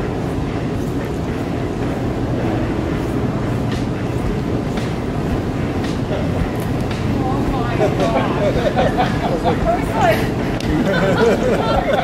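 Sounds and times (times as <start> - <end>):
airport terminal hall rumble: 0.0 - 12.0.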